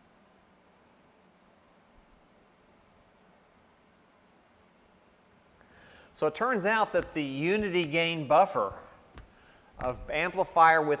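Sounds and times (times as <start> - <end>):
marker writing on whiteboard: 0.0 - 5.6, 6.6 - 8.0.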